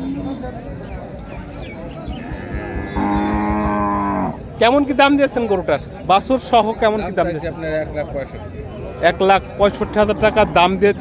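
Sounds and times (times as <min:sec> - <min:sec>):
cow mooing: 0:02.4 - 0:04.4, 0:09.0 - 0:10.8.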